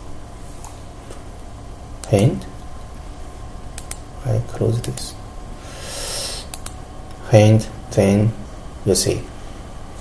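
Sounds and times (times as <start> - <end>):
computer mouse clicks: 2.0 - 2.3, 3.8 - 4.0, 6.5 - 6.8
soft hissing breath: 5.6 - 6.6.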